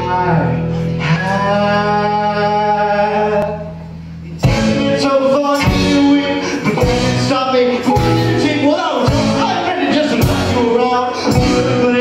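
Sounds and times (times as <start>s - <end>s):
band playing live: 0.0s - 12.0s.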